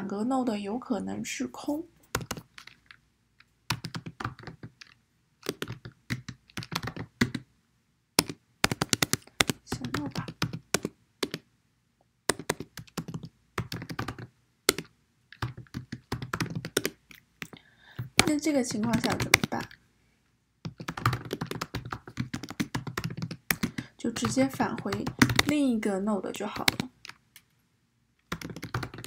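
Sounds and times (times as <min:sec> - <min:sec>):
typing on computer keyboard: 0:02.1 - 0:03.0, 0:03.7 - 0:07.5, 0:08.2 - 0:11.5, 0:12.3 - 0:19.8, 0:20.7 - 0:25.7, 0:26.5 - 0:27.2, 0:28.2 - 0:29.0.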